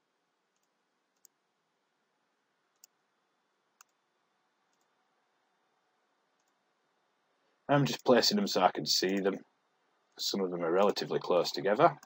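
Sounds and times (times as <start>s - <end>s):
computer mouse clicks: 3.8s - 4.0s.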